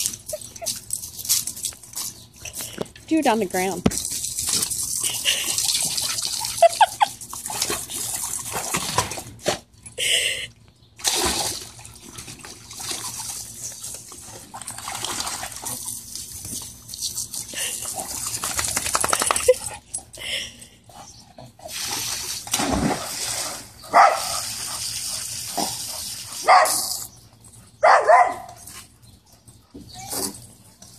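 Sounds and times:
garden hose spraying: 21.6s - 27.2s
water splashing: 21.7s - 26.7s
dogs barking: 23.9s - 24.3s, 26.4s - 26.9s, 27.8s - 28.6s.

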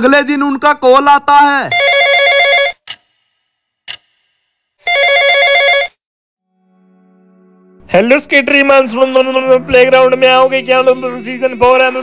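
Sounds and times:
smartphone ringtone melody: 1.7s - 2.8s, 4.8s - 6.0s
short clicks: 2.8s - 4.4s.

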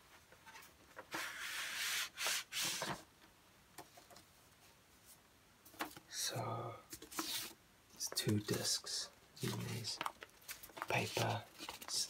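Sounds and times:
paper sleeve rubbing: 1.1s - 3.0s.

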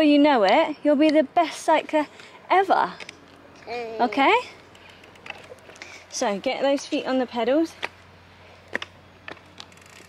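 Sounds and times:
clicks and knocks from bike: 4.6s - 5.9s, 8.6s - 10.0s.

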